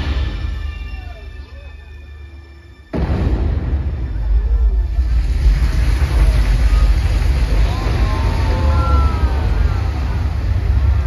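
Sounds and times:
deep rumble of fountain jets: 4.0 - 11.0.

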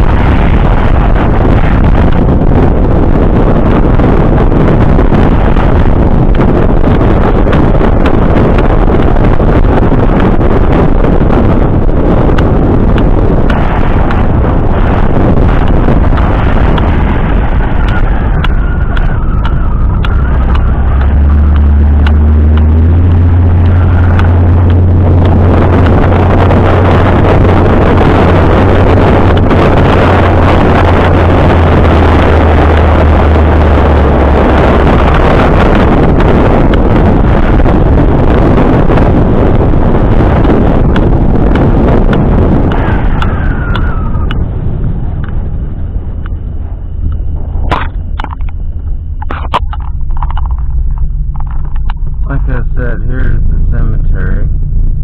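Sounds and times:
deep rumble: 0.0 - 55.0
wind and road noise in vehicle: 0.0 - 55.0.

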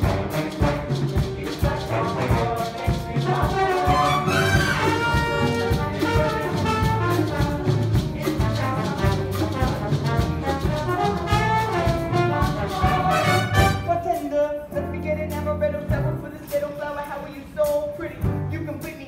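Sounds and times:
latin dance music with brass: 0.0 - 14.3
trumpets and trombones: 0.0 - 14.3
steady percussion: 0.0 - 19.0.

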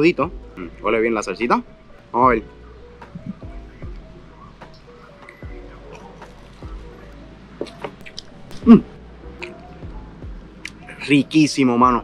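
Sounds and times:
lo-fi background music: 0.0 - 12.0.

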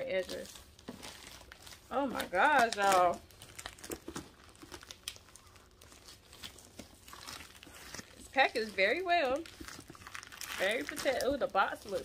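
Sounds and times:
plastic packaging crinkling: 0.0 - 12.0.

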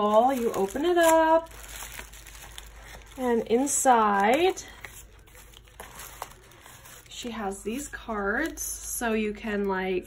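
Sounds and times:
rustling of cards from paper pocket: 0.0 - 8.6.

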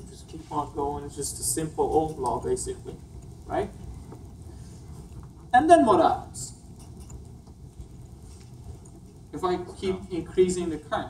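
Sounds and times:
low steady hum: 0.0 - 11.0.

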